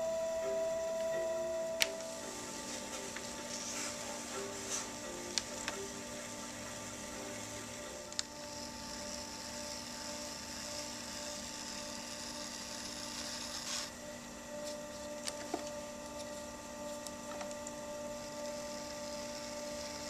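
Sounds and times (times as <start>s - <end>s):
pottery wheel motor humming: 0.0s - 20.0s.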